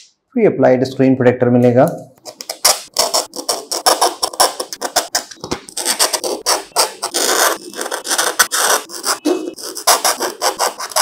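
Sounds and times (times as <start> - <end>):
knife scraping plastic: 2.2 - 11.0.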